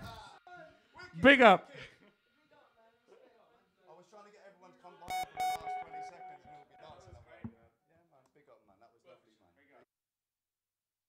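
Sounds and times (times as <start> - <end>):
ringing pulsing note: 5.1 - 7.0.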